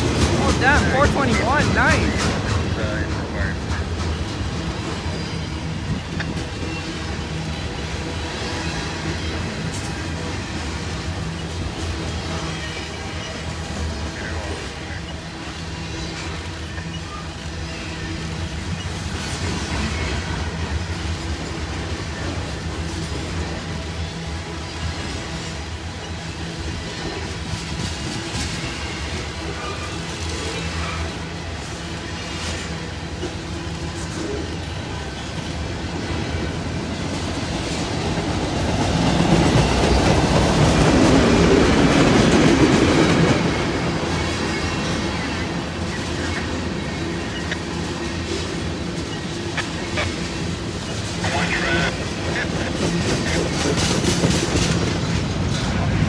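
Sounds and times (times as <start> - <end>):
clickety-clack over rail joints: 0.0 - 56.0
freight train wheels rumbling on rails: 0.0 - 56.0.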